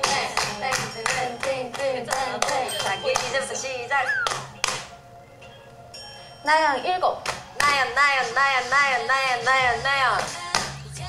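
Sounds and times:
sharp hand claps: 0.0 - 3.4, 4.2 - 4.9
upbeat background music: 0.0 - 11.0
falling whistle sound effect: 4.0 - 4.5.

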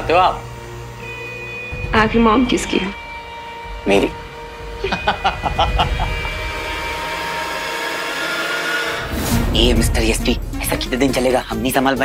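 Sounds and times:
person laughing: 4.8 - 6.5.

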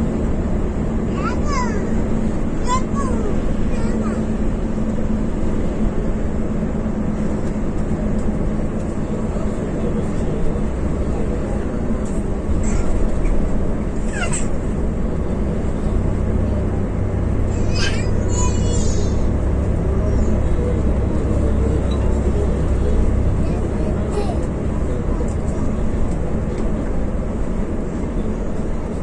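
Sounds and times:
bus engine and road noise: 0.0 - 29.0.

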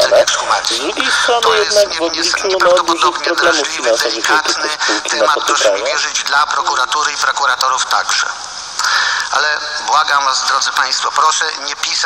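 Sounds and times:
man talking on radio: 0.0 - 8.2.

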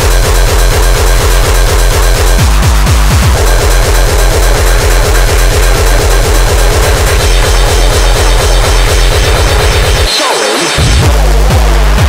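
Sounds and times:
hardcore dance music: 0.0 - 12.0
pounding distorted kick drum: 0.0 - 12.0.

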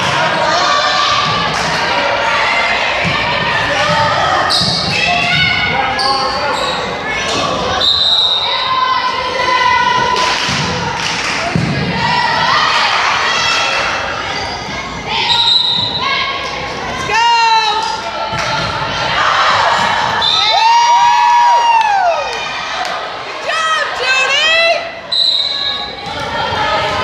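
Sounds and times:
voices and shouts echoing: 0.0 - 27.0.

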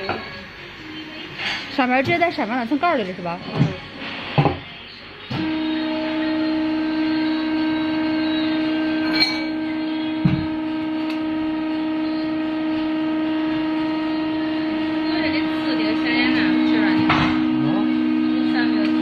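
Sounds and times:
electric machine drone: 5.1 - 19.0.

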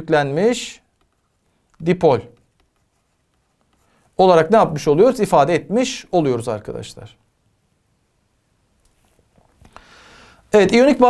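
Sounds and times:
stylus scratching on tablet: 0.3 - 4.8.

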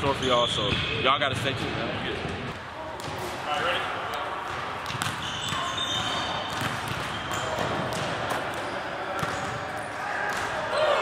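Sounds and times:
basketball bouncing on gym floor: 4.4 - 9.6.

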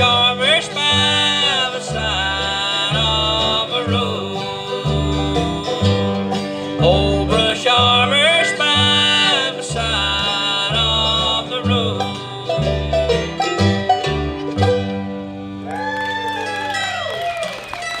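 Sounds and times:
bluegrass band playing: 0.0 - 18.0
sliding fiddle notes: 0.0 - 18.0
steady bass beat: 4.9 - 15.4.

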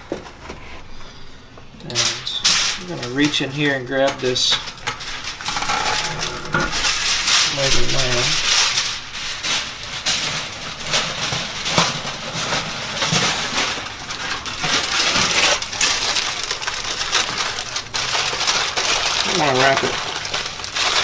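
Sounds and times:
aluminium foil crinkling: 0.0 - 21.0.

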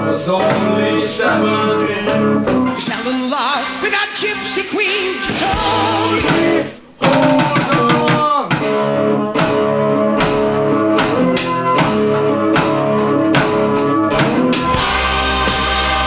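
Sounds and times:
live rock band with singer: 0.5 - 16.0
keyboard chords: 1.5 - 6.8, 9.2 - 16.0
electric guitar chords: 1.6 - 6.8, 8.8 - 16.0
steady beat: 2.7 - 6.8.

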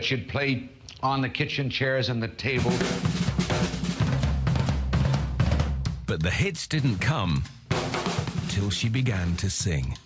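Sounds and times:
drum kit played with sticks: 2.6 - 10.0.

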